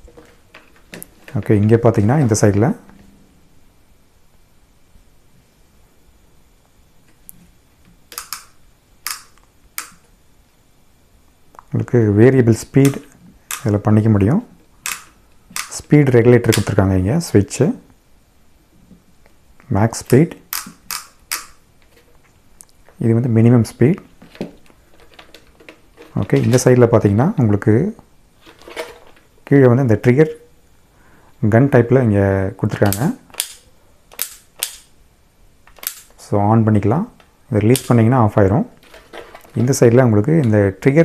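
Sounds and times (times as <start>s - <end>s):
man speaking: 1.3s - 2.9s, 11.7s - 14.5s, 15.7s - 17.9s, 19.6s - 20.4s, 23.0s - 24.1s, 26.1s - 28.0s, 29.5s - 30.5s, 31.4s - 33.2s, 36.2s - 38.8s, 39.5s - 41.0s.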